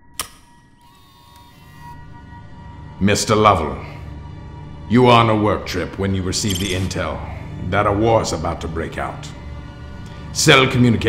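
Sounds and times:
projector switch click: 0.0s - 1.6s
ambient music with held tones: 0.0s - 11.0s.

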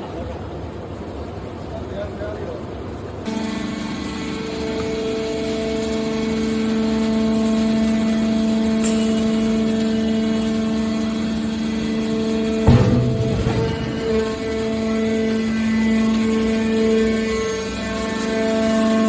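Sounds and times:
hydraulic power unit humming: 0.0s - 19.0s
loud metal clank: 12.5s - 16.1s.

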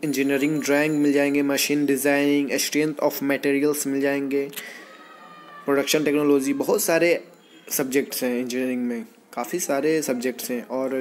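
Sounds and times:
man speaking voice-over: 0.0s - 4.5s, 5.7s - 11.0s.

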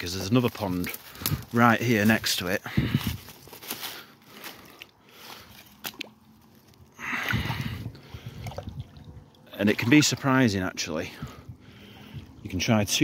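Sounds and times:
footsteps crunching through leaves: 0.0s - 6.8s
twigs snapping: 0.2s - 2.2s, 3.0s - 6.9s
water sloshing: 3.1s - 13.0s.

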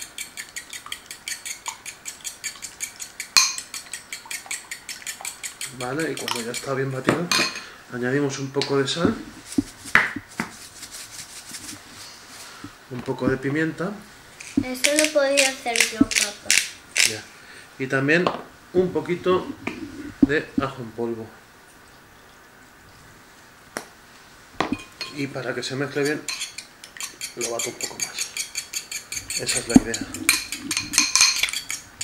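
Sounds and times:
fork clinking against ceramic bowl: 0.0s - 7.7s, 26.0s - 32.0s
salt shaker taps: 0.1s - 7.5s, 9.0s - 11.8s, 27.0s - 31.8s.

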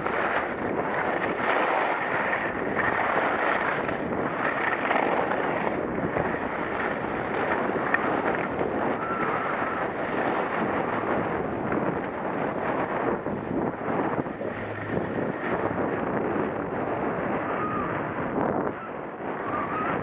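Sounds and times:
skis scraping over snow: 0.0s - 18.4s
wind rushing on microphone: 0.0s - 20.0s.

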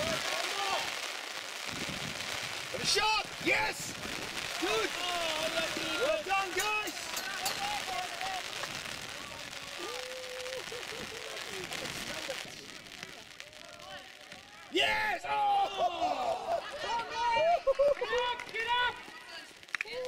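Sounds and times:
spectators shouting and cheering: 0.0s - 1.5s, 2.7s - 20.0s
steady outdoor hiss: 0.0s - 20.0s.

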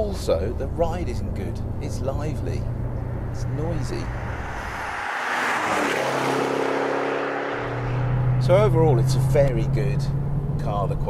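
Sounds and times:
car driving past at speed: 2.8s - 9.3s.

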